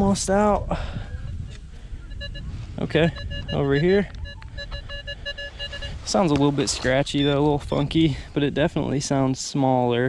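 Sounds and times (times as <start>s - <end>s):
metal detector beeps: 1.2s - 6.8s.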